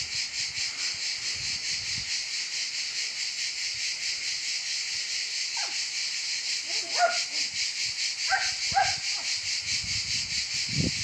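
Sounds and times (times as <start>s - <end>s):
cicada chorus buzzing: 0.0s - 11.0s.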